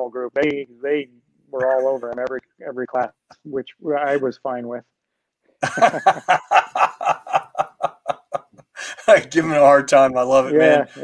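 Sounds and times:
man chuckling: 5.6 - 9.2.

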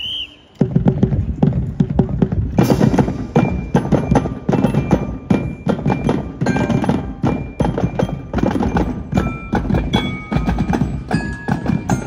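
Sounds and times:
bass drum thuds: 0.6 - 12.0.

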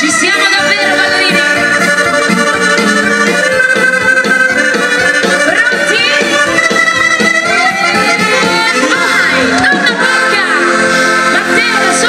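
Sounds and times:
accordion: 0.0 - 12.0
dance band playing live: 0.0 - 12.0.

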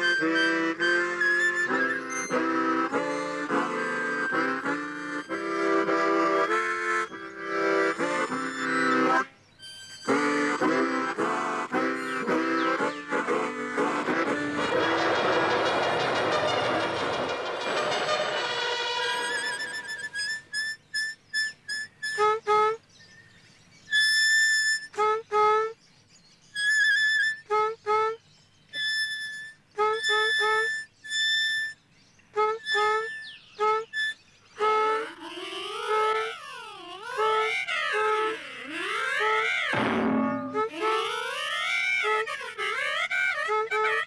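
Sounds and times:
harmonica swooping line: 0.0 - 22.6, 23.9 - 25.5, 26.6 - 28.2, 28.8 - 31.8, 32.4 - 44.0
harmonica notes: 0.0 - 22.8, 23.9 - 25.8, 26.6 - 28.2, 28.8 - 44.0
harmonicas playing chords: 10.0 - 20.5, 34.6 - 42.5.

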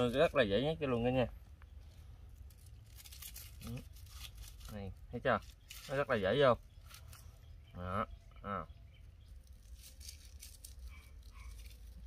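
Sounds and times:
rustling and crinkling leaves: 0.0 - 7.6, 8.9 - 12.0.

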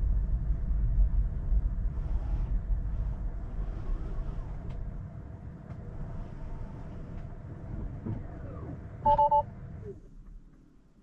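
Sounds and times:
low cabin hum: 0.0 - 11.0
two-note electronic chime beeps: 9.1 - 9.4.

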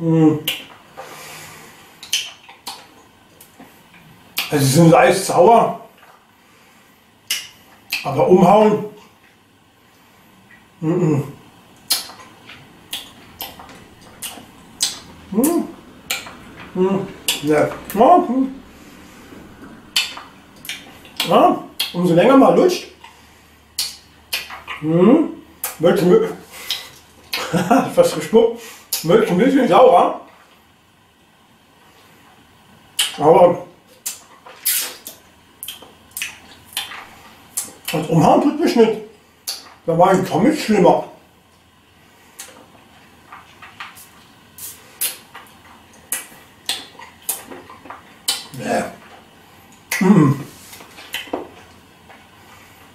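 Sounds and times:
low room hiss: 0.0 - 52.9
mouth clicks and smacks: 0.4 - 0.8, 2.0 - 4.6, 7.2 - 8.2, 11.7 - 18.0, 18.6 - 22.0, 23.8 - 25.0, 25.6 - 27.5, 28.9 - 29.1, 32.9 - 33.2, 33.9 - 38.1, 39.4 - 39.8, 43.3 - 52.2
mouth smack: 23.8 - 25.0, 34.0 - 38.0, 44.6 - 45.2, 46.1 - 48.6, 49.8 - 51.5.

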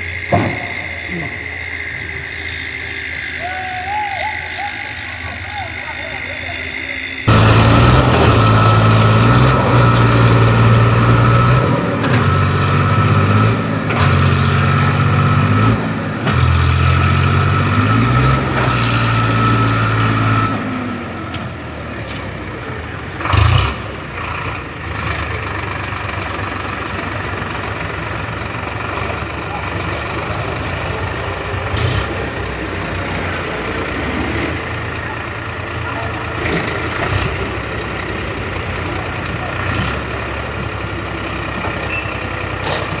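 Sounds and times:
diesel tractor engine under load: 0.0 - 43.0.

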